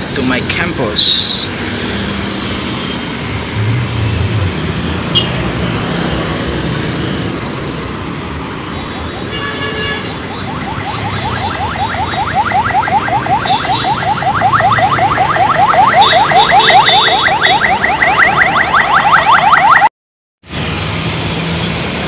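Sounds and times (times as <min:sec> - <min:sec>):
street traffic noise: 0:00.0 - 0:22.0
electronic alarm chirping: 0:10.3 - 0:19.9.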